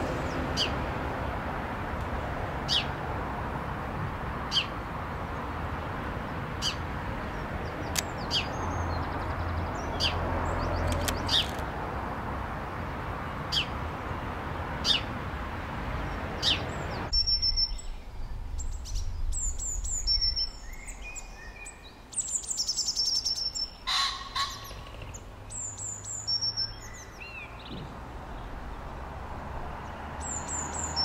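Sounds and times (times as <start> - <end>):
songbirds chirping and trilling: 0.0 - 31.0.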